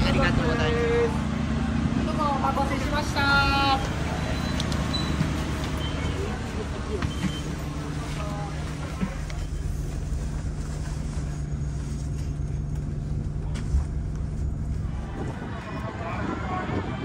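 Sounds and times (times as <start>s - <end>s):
bus engine humming: 0.0s - 17.0s.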